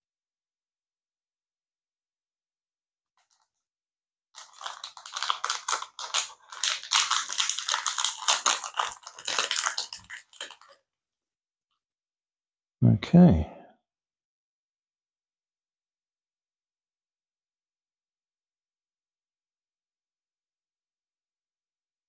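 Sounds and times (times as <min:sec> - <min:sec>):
foil pouch crinkling: 0:04.4 - 0:10.8.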